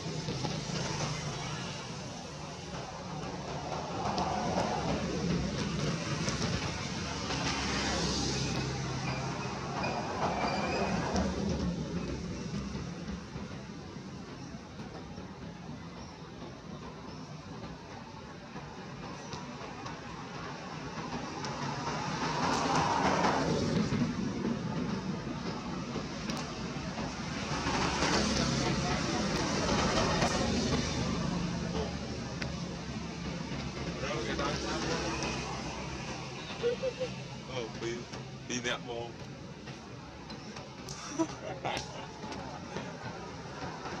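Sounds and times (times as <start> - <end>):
noisy background rumble: 0.0 - 44.0.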